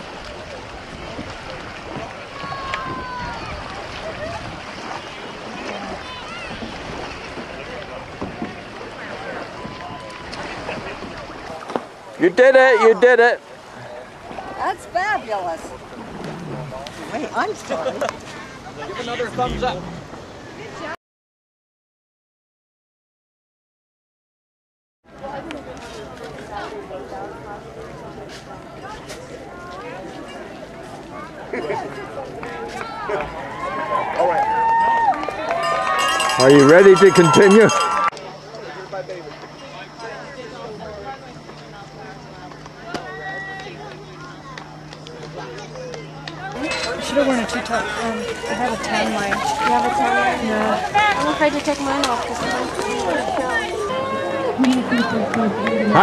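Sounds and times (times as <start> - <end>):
distant voices: 0.0 - 21.0, 25.1 - 56.0
people talking and calling out: 0.0 - 21.0, 25.1 - 56.0
wind on microphone: 0.7 - 7.6.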